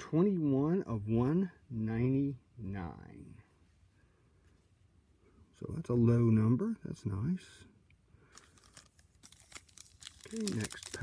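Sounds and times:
wrapper crinkling: 8.3 - 11.0.

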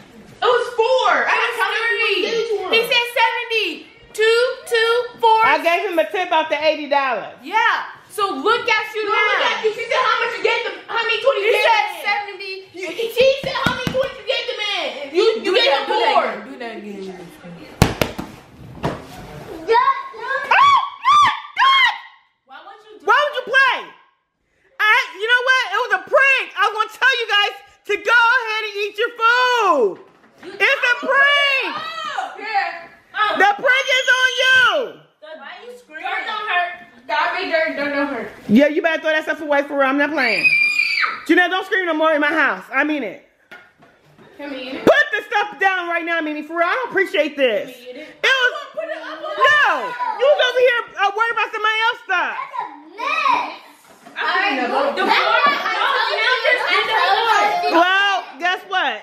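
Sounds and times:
girl screaming: 20.2 - 22.1, 40.3 - 41.3.

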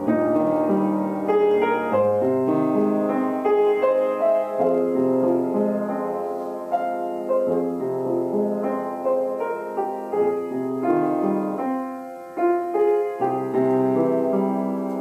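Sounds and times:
piano music: 0.0 - 15.0.

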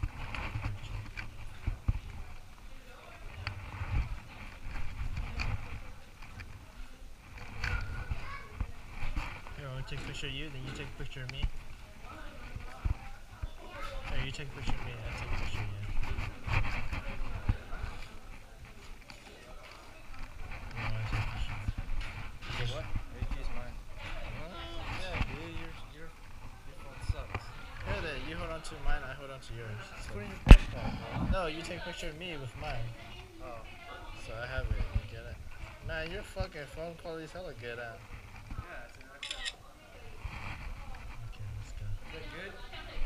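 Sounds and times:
faint indistinct talk: 0.0 - 43.0
camera handling rumble: 38.2 - 39.6.

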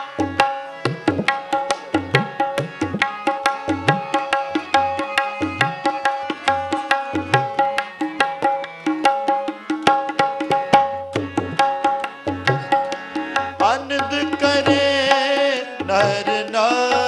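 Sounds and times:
harmonium notes: 0.0 - 17.0
tabla playing rhythm: 0.0 - 17.0.

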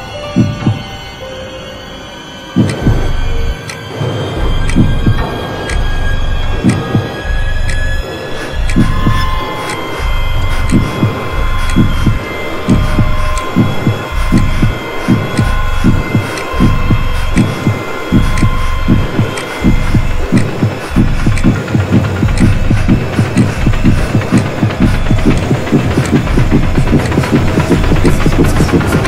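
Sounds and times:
low throbbing pulse: 0.0 - 29.0
steady high drone: 0.0 - 29.0.

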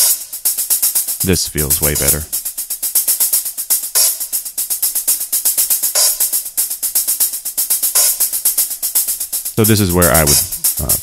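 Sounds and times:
hi-hat hits: 0.0 - 11.0.

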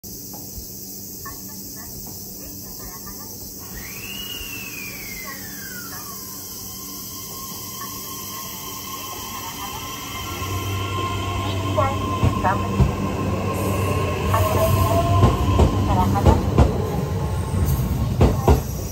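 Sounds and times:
insects buzzing: 0.0 - 18.9
electric train pulling away: 1.4 - 18.9
rising and falling whine: 3.6 - 17.5.

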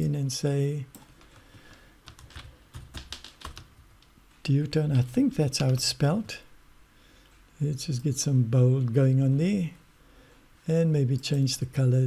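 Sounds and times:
keyboard typing: 0.9 - 3.8.

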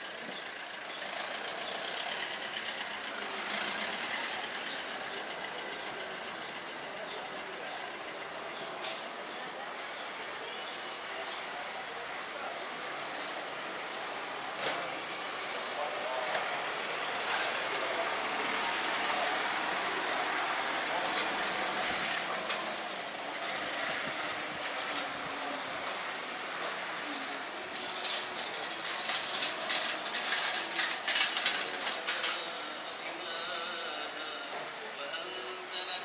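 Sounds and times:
passers-by talking: 0.0 - 36.0
vehicle nearby: 0.0 - 36.0
rattling clatter: 21.0 - 26.8, 27.5 - 32.5.

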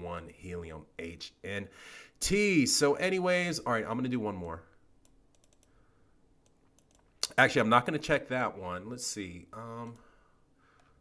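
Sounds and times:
faint computer clicks: 4.4 - 5.8, 6.4 - 7.4, 9.7 - 10.1.

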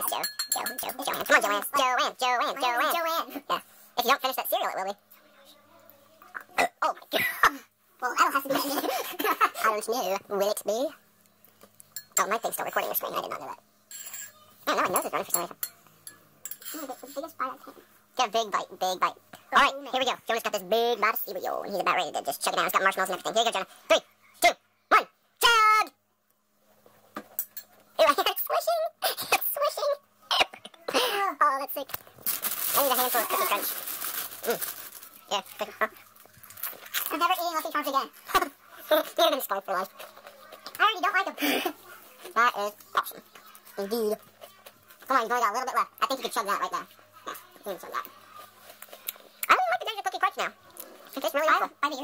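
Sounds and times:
eating cereal: 31.9 - 41.1.

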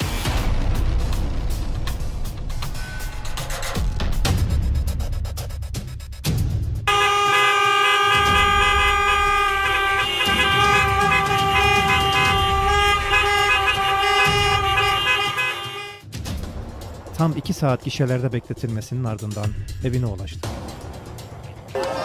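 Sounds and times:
car horns blaring: 6.9 - 16.1, 21.7 - 22.0.

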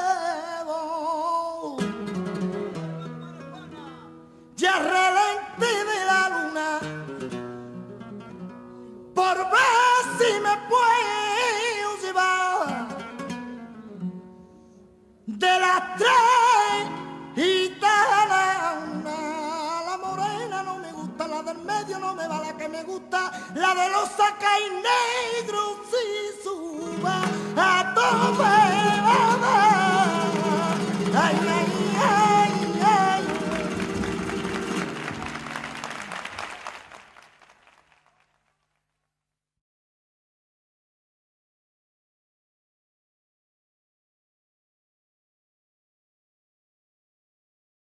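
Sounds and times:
person singing: 0.0 - 2.0, 3.0 - 7.0, 9.2 - 13.1, 15.3 - 35.4
flamenco guitar plucked notes: 1.6 - 14.5, 15.3 - 36.4
audience applause: 28.1 - 38.4.

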